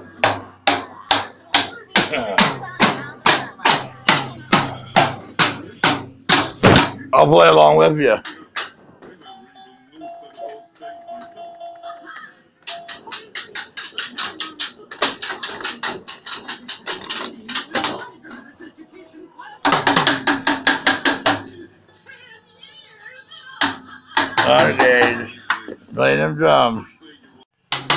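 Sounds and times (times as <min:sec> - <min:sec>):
child beating plastic drum kit: 0:00.0 - 0:07.1, 0:12.6 - 0:18.1, 0:19.6 - 0:21.6, 0:23.6 - 0:25.7, 0:27.6 - 0:27.9.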